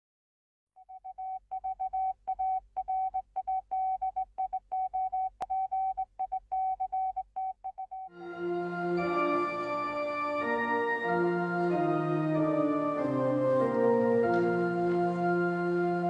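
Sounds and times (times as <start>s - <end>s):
morse code beeps: 0.8s - 8.1s.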